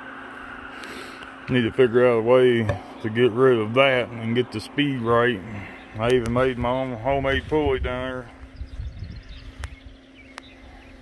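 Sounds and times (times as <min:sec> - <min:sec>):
electric motor humming: 0:00.0 - 0:11.0.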